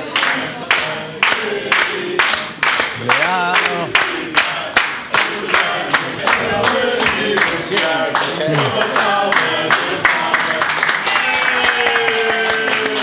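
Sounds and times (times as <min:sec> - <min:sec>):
group singing a birthday song: 0:00.0 - 0:11.3
rhythmic hand-clapping: 0:00.0 - 0:13.0.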